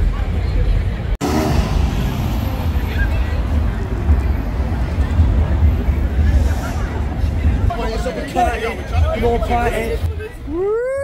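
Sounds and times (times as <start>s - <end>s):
people chattering: 0.0s - 11.0s
steady low rumble: 0.8s - 10.2s
car driving past: 1.2s - 5.1s.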